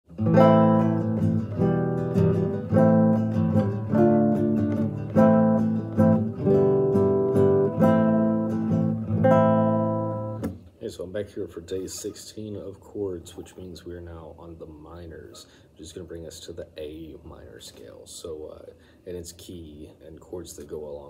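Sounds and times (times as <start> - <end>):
classical guitar strumming chords: 0.1 - 10.8.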